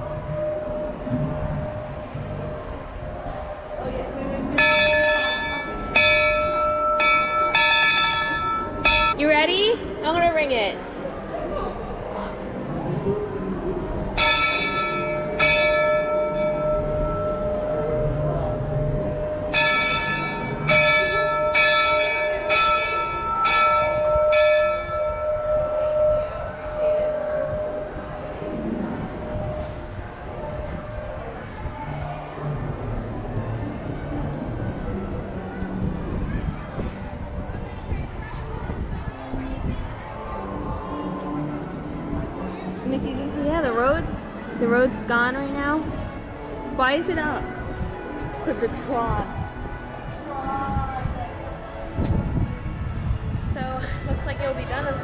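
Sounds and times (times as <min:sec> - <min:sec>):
locomotive bell ringing: 0:00.0 - 0:10.4, 0:13.4 - 0:31.5.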